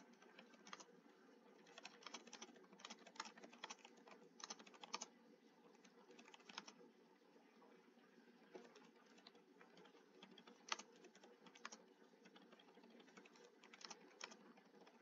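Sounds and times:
typing on computer keyboard: 0.0 - 0.8, 1.6 - 5.1, 6.1 - 6.8, 8.6 - 15.0.

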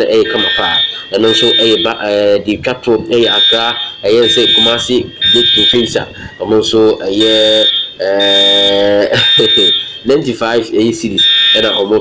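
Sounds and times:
person talking: 0.0 - 12.0.

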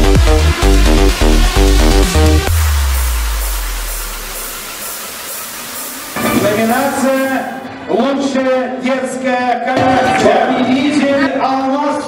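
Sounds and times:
deep bass note: 0.0 - 4.9
electronic beat: 0.0 - 7.7.

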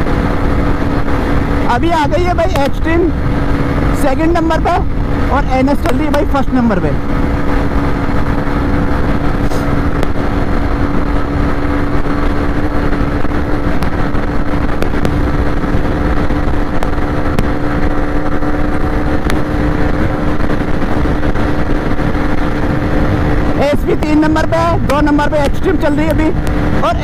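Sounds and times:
motorcycle engine at top speed: 0.0 - 27.0
wind rumble on microphone: 0.0 - 27.0.

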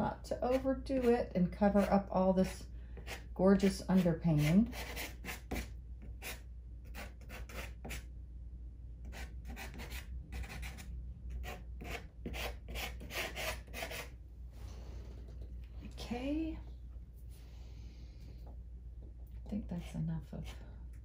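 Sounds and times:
pastel stick scratching paper: 4.0 - 8.0.

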